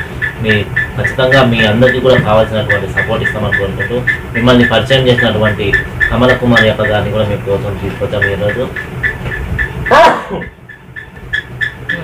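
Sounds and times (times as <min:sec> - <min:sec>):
faint high chirping: 0:00.0 - 0:12.0
dog yelping: 0:08.7 - 0:12.0.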